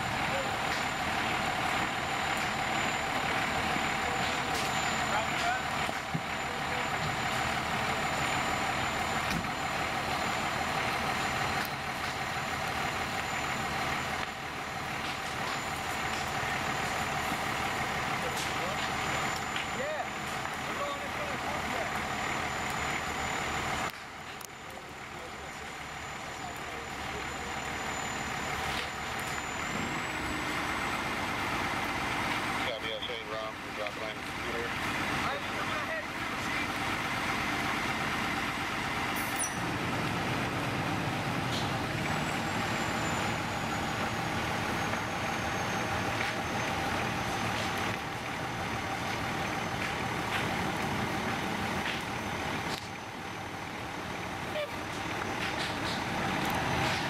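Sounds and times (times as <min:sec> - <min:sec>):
constant high whine: 0:00.0 - 0:57.0
fire engine running: 0:00.0 - 0:57.0.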